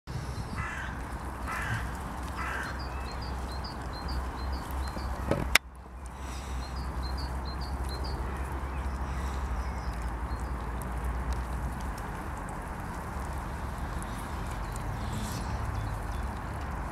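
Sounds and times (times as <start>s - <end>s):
harsh crow-like bird calls: 0.4s - 5.4s.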